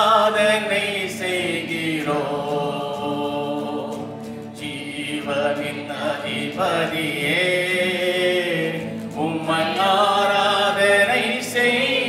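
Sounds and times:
guitar accompaniment: 0.0s - 12.0s
woman and man singing: 0.0s - 12.0s.

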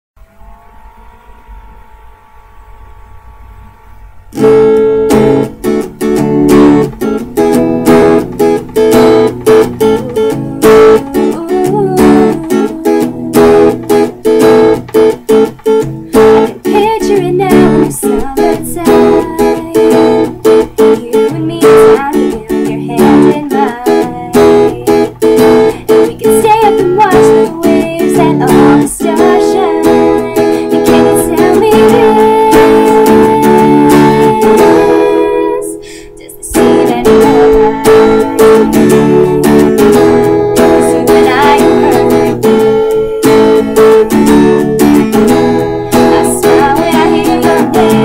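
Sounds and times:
acoustic guitar strumming: 0.2s - 48.0s.

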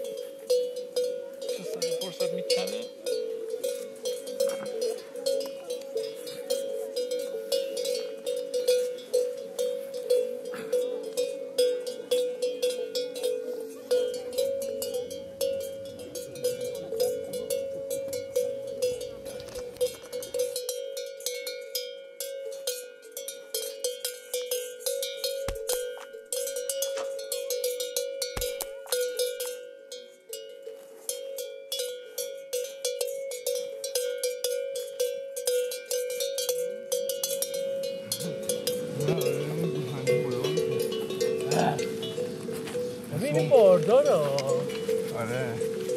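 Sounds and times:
cow bell clanking: 0.0s - 45.9s.

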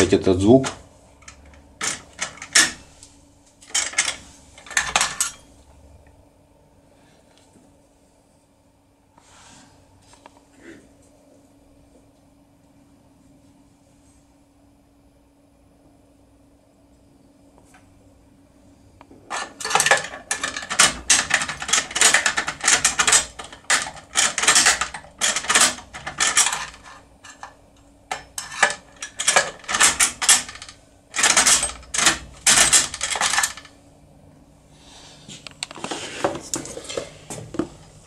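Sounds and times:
metallic clicking and rattling of lock: 0.6s - 2.8s, 3.6s - 5.4s, 19.3s - 33.7s.

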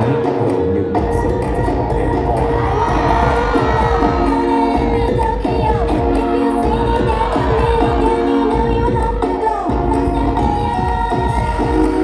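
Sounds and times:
crowd cheering and shouting: 0.0s - 12.0s
loud music over a pa system: 0.0s - 12.0s.

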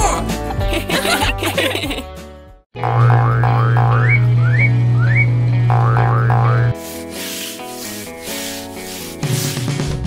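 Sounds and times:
brush scrubbing floor: 6.7s - 10.0s.

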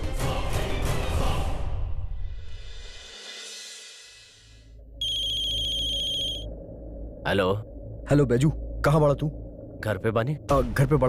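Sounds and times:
telephone ringing: 5.0s - 6.5s.

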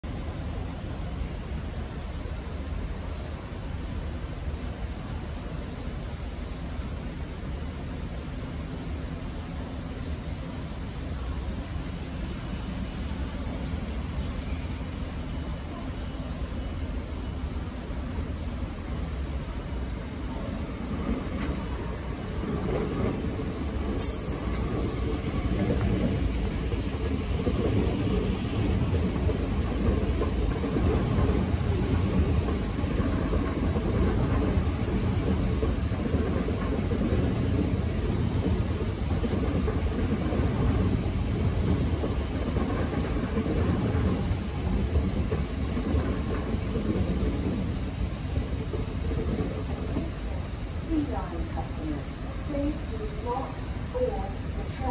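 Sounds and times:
electric train passing: 0.0s - 54.9s.

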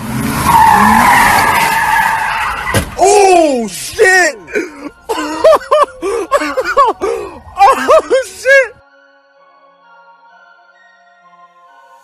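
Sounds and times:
car tyres squealing: 0.0s - 3.0s.

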